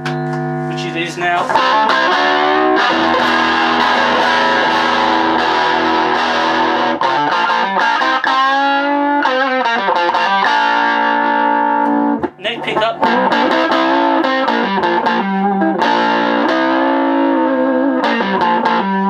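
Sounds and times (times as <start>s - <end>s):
distorted electric guitar lead: 0.0s - 19.0s.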